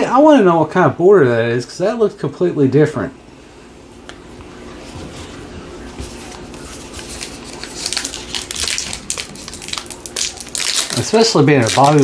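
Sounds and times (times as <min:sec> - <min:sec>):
plastic wrapper crinkling and tearing: 0:06.2 - 0:12.0.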